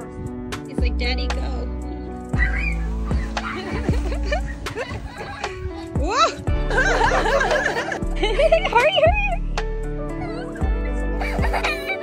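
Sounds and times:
music with deep bass hits: 0:00.0 - 0:12.0.

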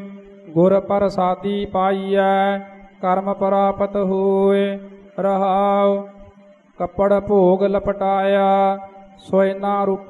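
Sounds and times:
person chanting scripture: 0:00.0 - 0:10.0.

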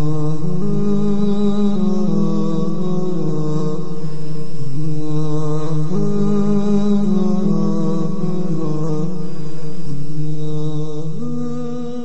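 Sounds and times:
vocal chant in long held notes: 0:00.0 - 0:12.0.

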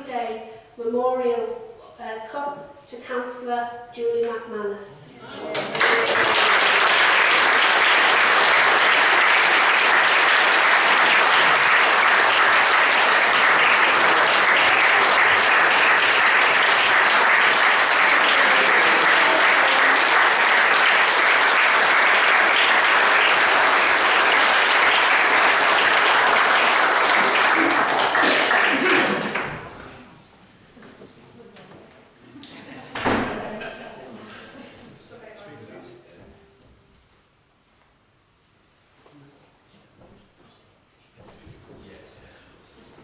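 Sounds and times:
people applauding: 0:05.4 - 0:30.0.

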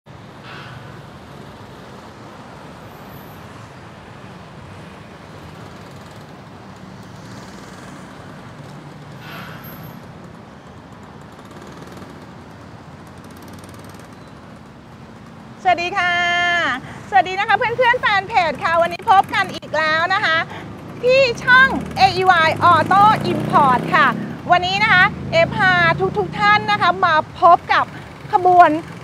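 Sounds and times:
road traffic rumble: 0:00.1 - 0:29.0
brief hisses: 0:09.2 - 0:09.9.

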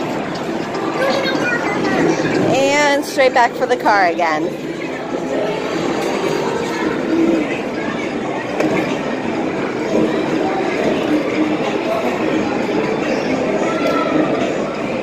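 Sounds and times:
arcade game machines: 0:00.0 - 0:15.0
hubbub of many voices: 0:00.0 - 0:15.0.

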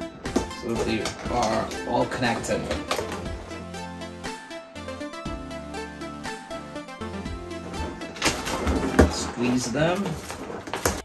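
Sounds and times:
background music: 0:00.0 - 0:11.0
balloons rubbing and handled: 0:07.0 - 0:11.0.

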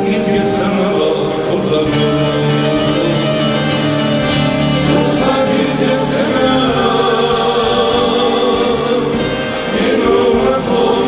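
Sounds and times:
accordion: 0:00.0 - 0:11.0
drums: 0:00.0 - 0:11.0
electric guitar: 0:00.0 - 0:11.0
man singing long notes: 0:00.0 - 0:11.0.

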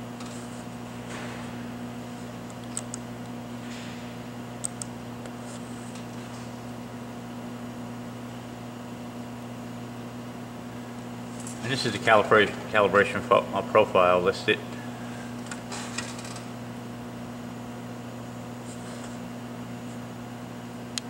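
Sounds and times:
electrical hum and fan hiss: 0:00.0 - 0:21.0.

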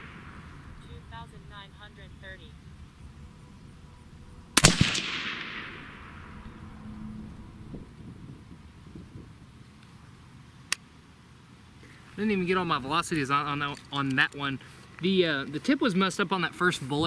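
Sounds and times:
suppressed rifle shot with echo: 0:00.0 - 0:00.9, 0:04.6 - 0:06.7.

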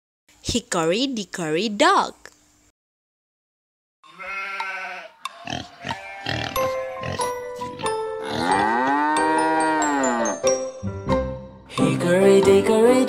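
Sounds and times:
cartoon farm animal calls: 0:04.1 - 0:10.4
children's song music: 0:06.6 - 0:13.0.

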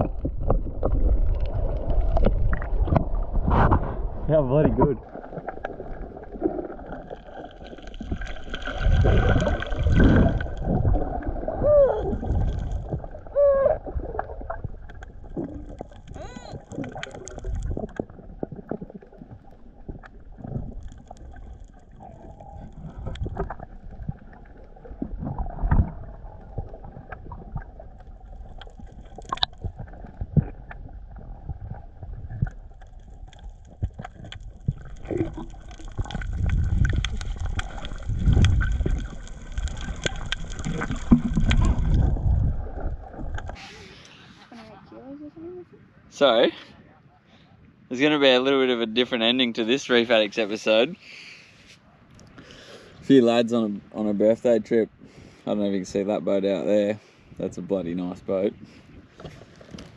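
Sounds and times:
gurgling bubbles: 0:00.0 - 0:43.7
low underwater rumbling: 0:00.0 - 0:46.2.

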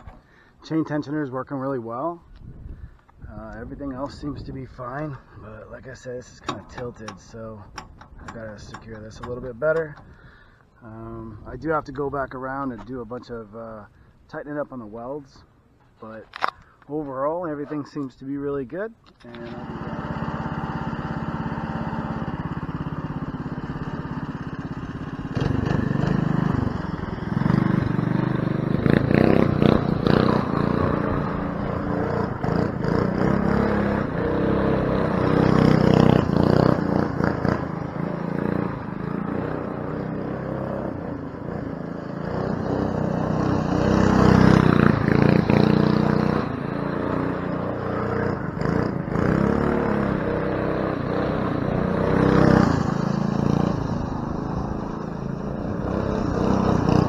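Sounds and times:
go-kart engine revving: 0:19.2 - 0:57.0.

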